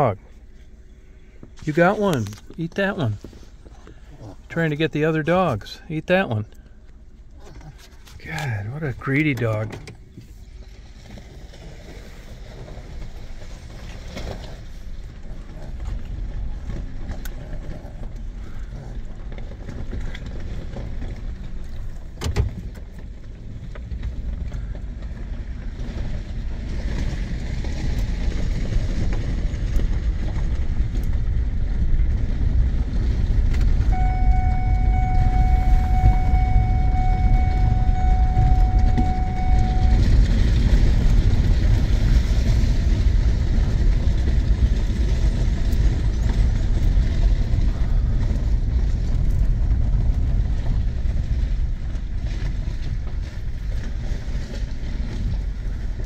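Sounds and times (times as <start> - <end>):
engine and tyre rumble: 0.0 - 56.0
steady single tone: 33.9 - 40.3.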